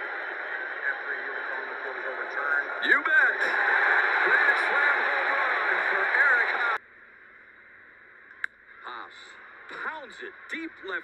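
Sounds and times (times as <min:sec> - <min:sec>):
ballpark crowd murmur: 0:00.0 - 0:06.8.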